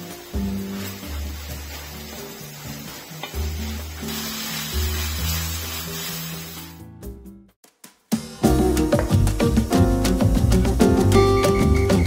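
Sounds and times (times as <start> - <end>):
chicken sizzling in a wok: 0.0 - 6.9
background music with bass line: 6.7 - 12.0.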